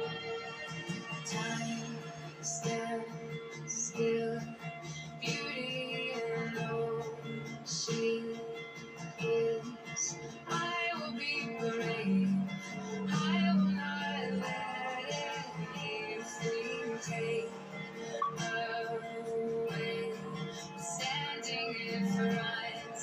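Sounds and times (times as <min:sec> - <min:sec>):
pop song with singing: 0:00.0 - 0:23.0.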